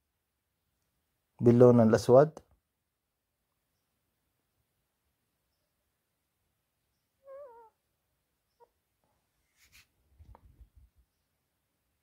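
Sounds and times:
faint chirp: 5.4 - 6.0, 6.8 - 8.8
faint wavering animal call: 7.2 - 7.9.

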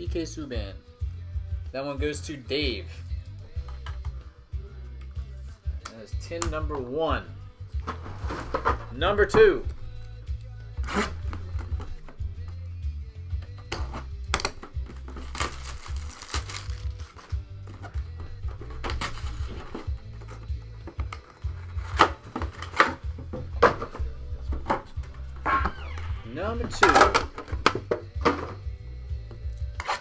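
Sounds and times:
background music with steady beat: 0.0 - 30.0
plastic wrap crinkling: 15.1 - 17.4
boxes knocking when set down: 21.9 - 25.2.

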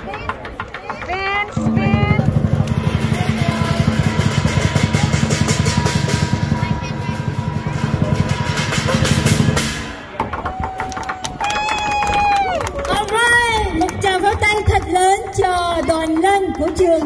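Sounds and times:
drum beaten in fast roll: 0.9 - 10.9
cymbals clashing: 1.8 - 10.2.

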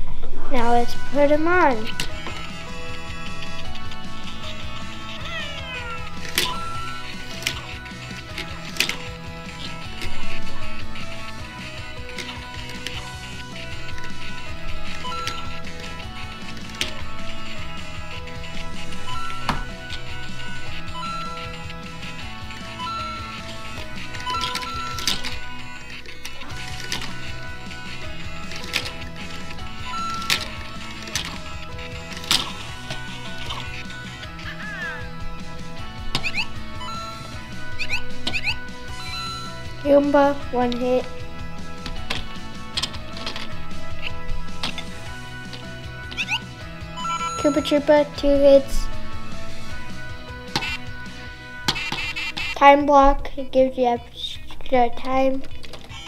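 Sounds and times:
music with short held notes: 0.4 - 53.1.

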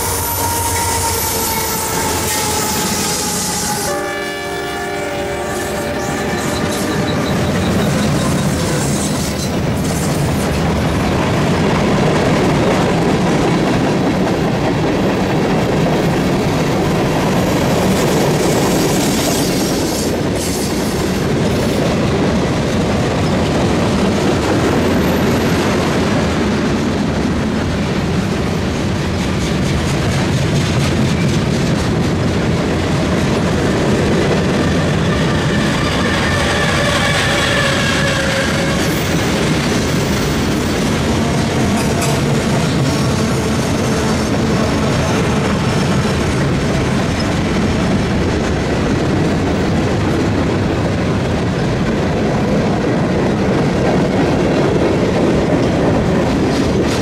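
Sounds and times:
freight train rumbling past: 0.0 - 57.0.

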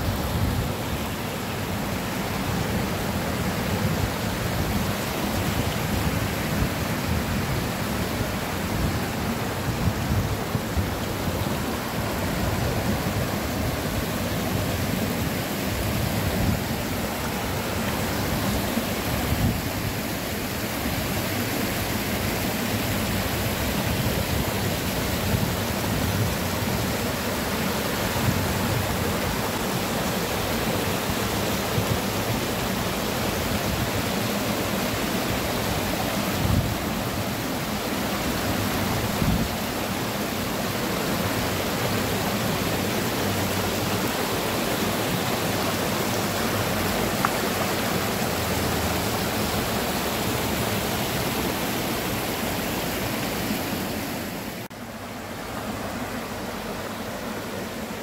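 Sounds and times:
stream rushing over stones: 0.0 - 58.0.

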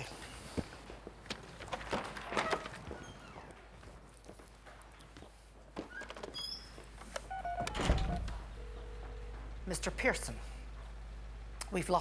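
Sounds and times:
wooden door shutting: 1.7 - 3.4, 7.4 - 8.5
short beeping tones: 7.3 - 9.3.

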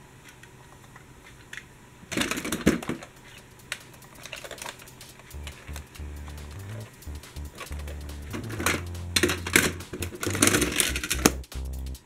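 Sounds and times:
toy vehicles rattling in plastic box: 2.1 - 5.2.

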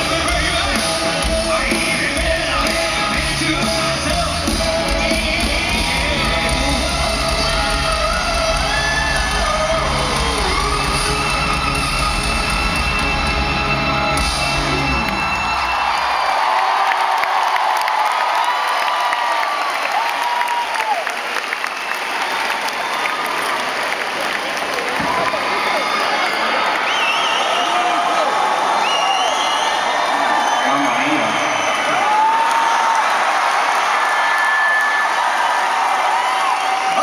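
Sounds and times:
live rock band playing: 0.0 - 16.0
crowd cheering and whooping: 0.0 - 37.0.

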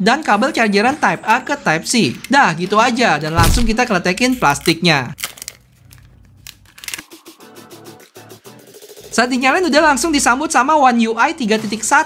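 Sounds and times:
plastic film peeling and crinkling: 3.4 - 7.0.

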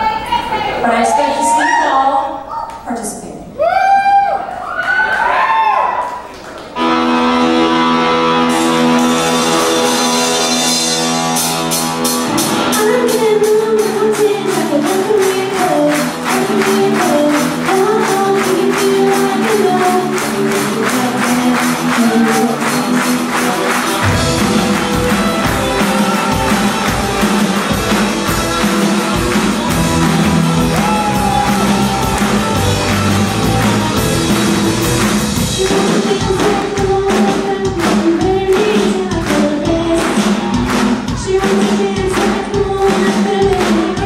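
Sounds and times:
electric guitars: 6.6 - 44.0
bass guitar: 6.7 - 44.0
drum kit: 6.8 - 44.0
person singing: 12.6 - 27.2, 35.4 - 44.0
handclaps: 13.8 - 44.0.

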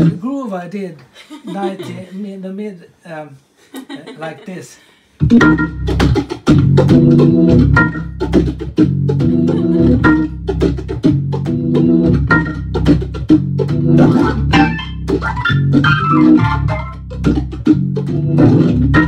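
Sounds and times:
organ playing rhythmic chords: 5.2 - 19.0
steady low bass: 5.2 - 19.0.

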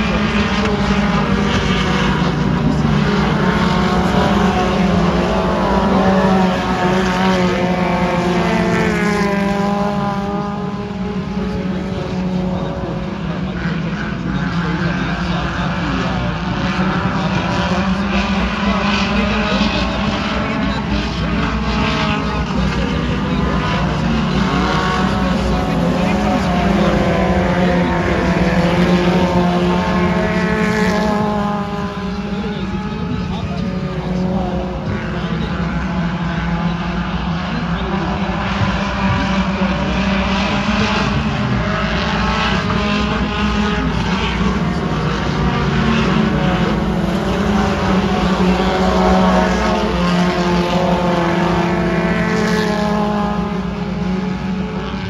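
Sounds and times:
race car engines passing: 0.0 - 55.0.

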